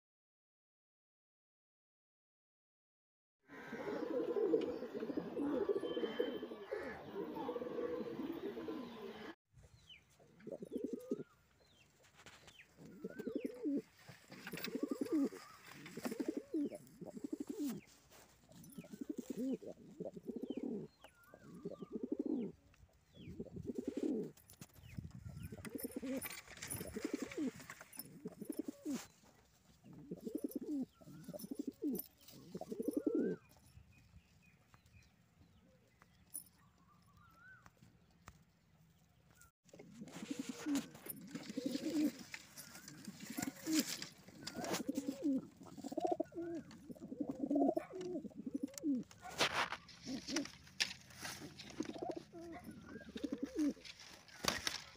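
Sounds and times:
pigeons cooing: 3.5s - 9.4s, 10.3s - 11.4s, 12.8s - 17.9s, 18.5s - 24.4s, 25.4s - 29.1s, 29.8s - 33.5s, 39.7s - 54.9s.

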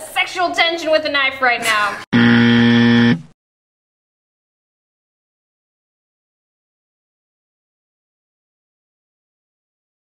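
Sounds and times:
loud buzzer: 2.1s - 3.4s.

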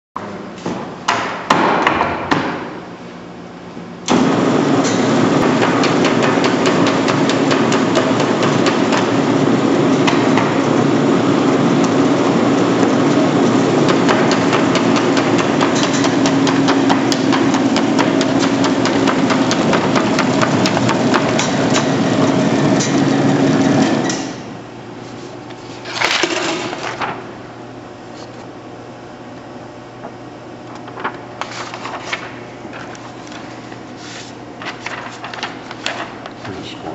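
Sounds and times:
machine humming and ticking: 4.0s - 25.6s, 29.3s - 33.4s
paper being handled: 25.0s - 27.3s, 30.7s - 36.7s.

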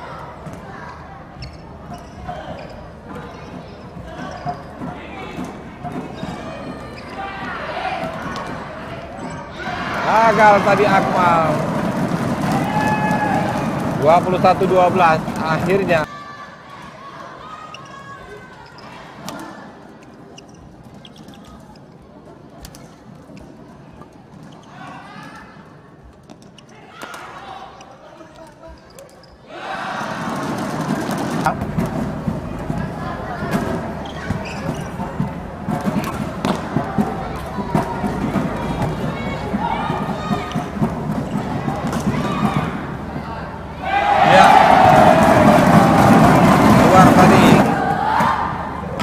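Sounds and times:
crowd noise: 0.0s - 49.0s
low murmur of hall: 0.0s - 49.0s
shuttlecock knocks and shoe squeaks: 0.4s - 7.4s, 20.0s - 21.9s, 26.1s - 27.2s, 34.0s - 36.6s.

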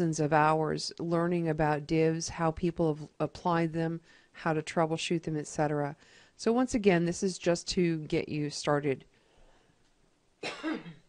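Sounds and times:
woman coughing: 10.4s - 11.0s.

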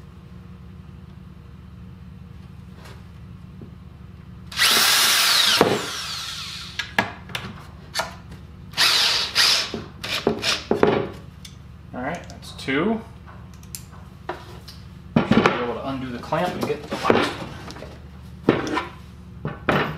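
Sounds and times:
cordless drill driving a screw: 4.5s - 6.9s, 8.8s - 10.7s.

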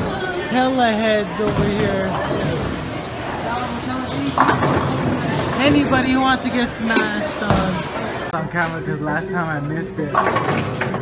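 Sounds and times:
bowling pins clattering: 4.3s - 8.2s.

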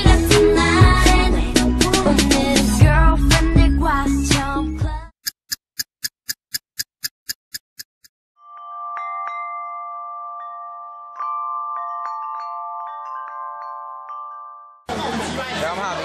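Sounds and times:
short even ticks: 5.2s - 8.1s.

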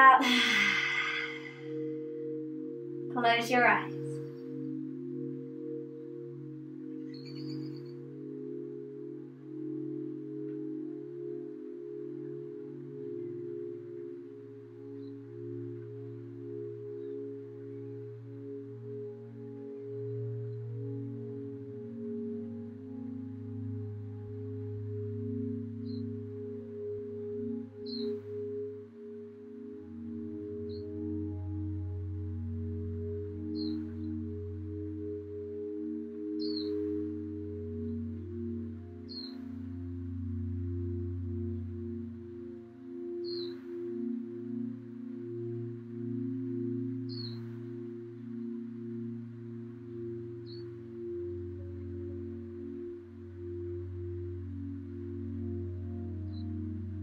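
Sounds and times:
low drone relaxation music: 0.0s - 57.0s.

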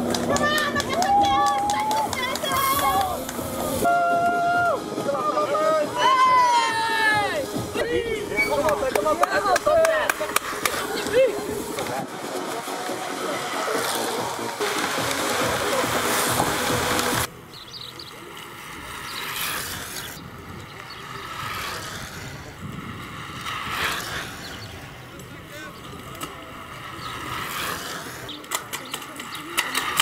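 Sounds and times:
loud rush of noise: 0.0s - 28.5s
faint distant voices: 0.0s - 30.0s.

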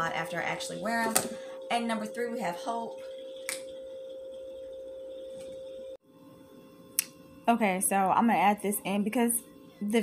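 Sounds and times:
steady even tone: 0.0s - 6.0s
faint hum: 0.0s - 10.0s.

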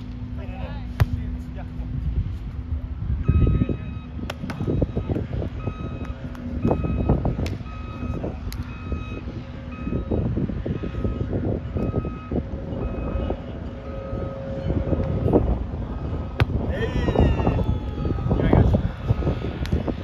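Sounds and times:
low wind rumble: 0.0s - 20.0s
reversing alarm beeping: 3.2s - 15.1s.

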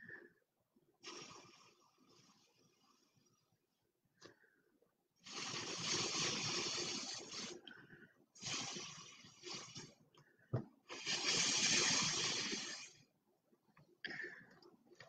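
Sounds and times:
air hissing through a straw: 1.0s - 2.6s, 5.2s - 7.7s, 8.4s - 10.0s, 10.9s - 13.1s.

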